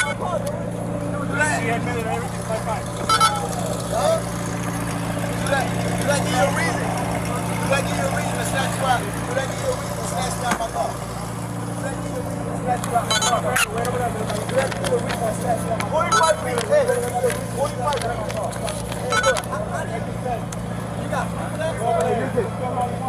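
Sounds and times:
indistinct voices: 0.0 - 23.0
vehicle engine idling: 0.0 - 23.0.

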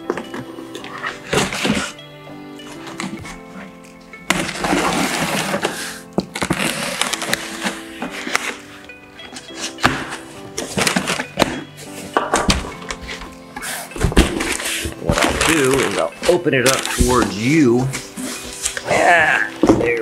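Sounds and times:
background music: 0.0 - 20.0
cardboard flaps scraping and knocking: 4.3 - 8.6
packing tape ripping: 4.3 - 8.6, 14.2 - 17.4.

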